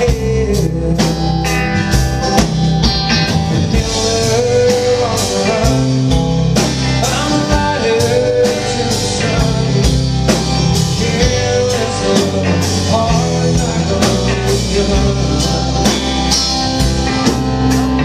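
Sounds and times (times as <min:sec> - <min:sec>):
bass guitar: 0:00.0 - 0:18.0
distorted electric guitars: 0:00.0 - 0:18.0
drum kit beat: 0:00.0 - 0:18.0.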